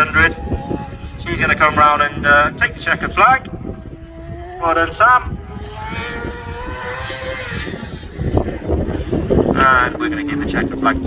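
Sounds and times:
racing car engine at high revs: 0:00.0 - 0:11.0
wind buffeting microphone: 0:00.0 - 0:11.0.

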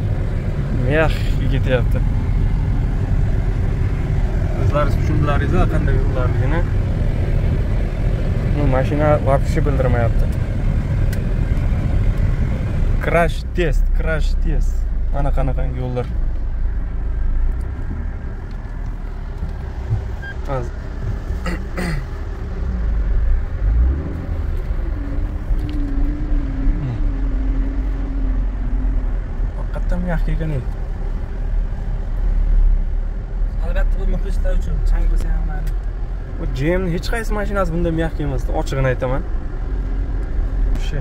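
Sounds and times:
vehicle cabin rumble on rough road: 0:00.0 - 0:41.0
wavering drone: 0:24.1 - 0:29.4.

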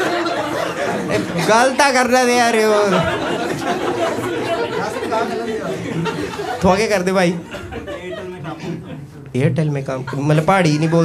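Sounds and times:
audience members chattering: 0:00.0 - 0:11.0.

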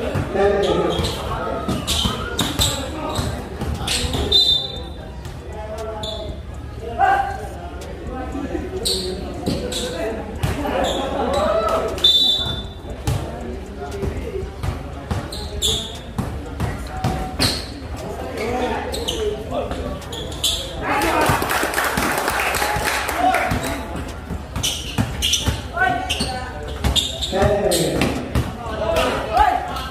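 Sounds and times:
chatter of onlookers: 0:00.0 - 0:29.9
basketball bouncing on concrete: 0:13.0 - 0:17.6, 0:23.5 - 0:26.1.

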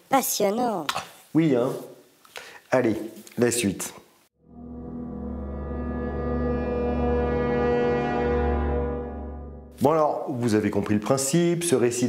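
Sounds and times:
low horn-like tone: 0:04.4 - 0:09.7
deep drone: 0:04.4 - 0:09.8.

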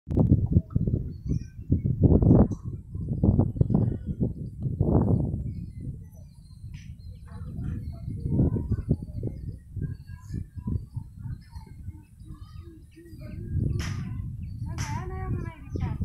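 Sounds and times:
birds chirping: 0:00.6 - 0:16.0.

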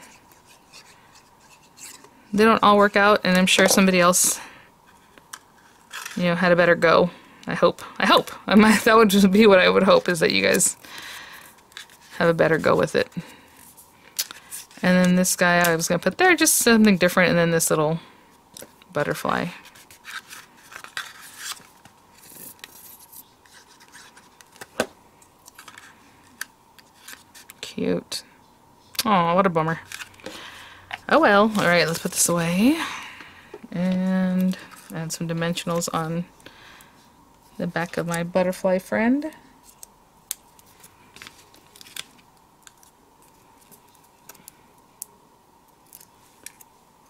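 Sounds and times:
paper rustling and rubbing: 0:19.6 - 0:24.7
paper pieces crinkling: 0:40.6 - 0:44.5.

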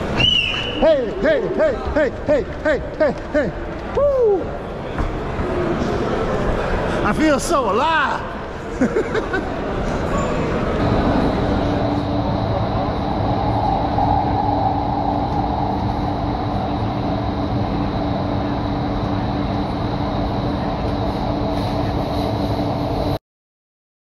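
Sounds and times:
train rumble and hum: 0:00.0 - 0:07.4, 0:08.2 - 0:23.2.

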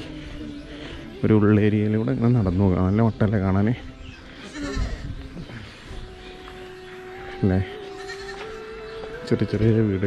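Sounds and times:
young goat bleating: 0:04.4 - 0:05.1, 0:07.9 - 0:08.5.

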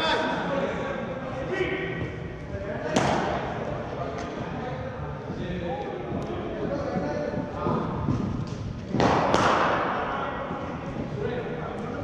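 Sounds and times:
sharp crack: 0:08.9 - 0:10.0.

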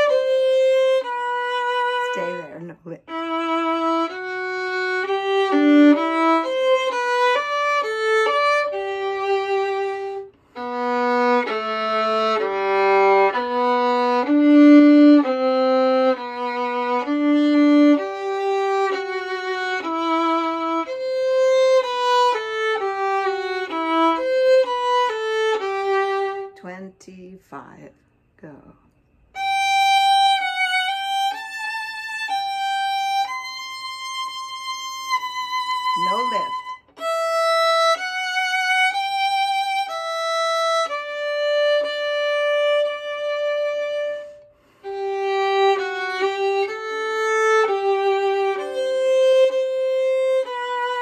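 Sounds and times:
solo violin bowing slow notes: 0:00.0 - 0:26.6, 0:29.3 - 0:51.0.

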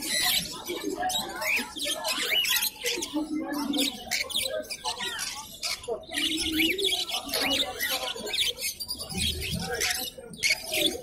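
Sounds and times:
caged birds chirping: 0:00.0 - 0:11.0.

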